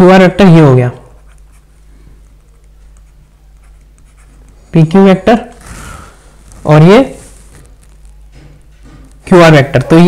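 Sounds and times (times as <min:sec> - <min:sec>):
person speaking: 0:00.0 - 0:08.1, 0:09.1 - 0:10.0
stylus scratching on a tablet: 0:01.0 - 0:10.0.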